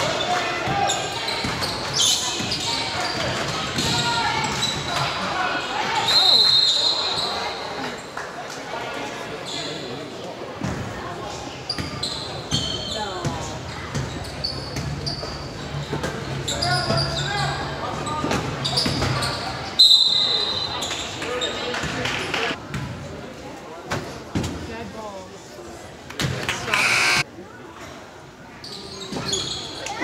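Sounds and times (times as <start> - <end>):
voices echoing in a hall: 0.0 - 30.0
sneakers squeaking: 0.2 - 5.1, 11.7 - 21.6, 26.5 - 27.2, 28.6 - 30.0.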